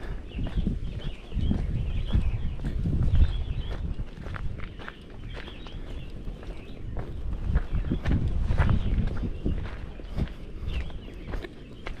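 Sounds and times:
footsteps crunching on stony track: 0.0 - 12.0.

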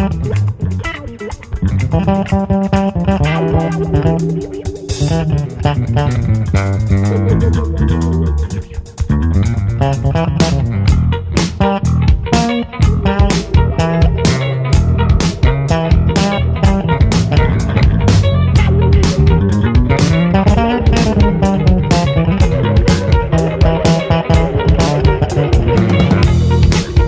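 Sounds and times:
bass guitar: 0.0 - 27.0
drum kit beat: 0.0 - 27.0
electric guitar: 0.0 - 27.0.

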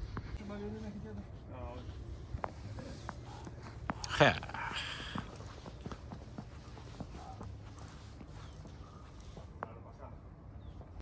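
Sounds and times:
footsteps on snow: 0.0 - 9.8.

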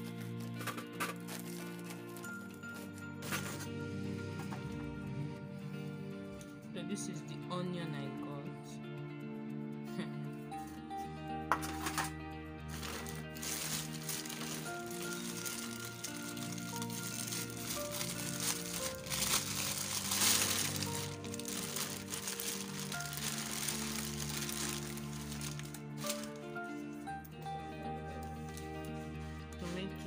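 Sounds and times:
plastic bag crinkling: 0.0 - 3.7, 12.7 - 26.8
background music: 0.0 - 30.0.

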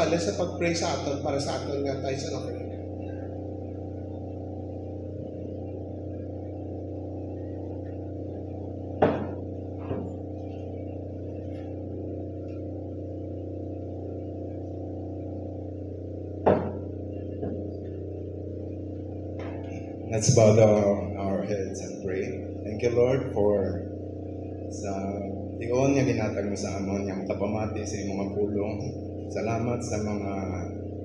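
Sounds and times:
sharp knocks: 9.0 - 10.2, 16.4 - 17.7.

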